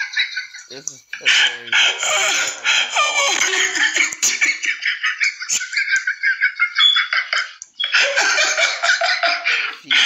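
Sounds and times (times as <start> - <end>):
high-pitched laughter: 0.0 - 10.0.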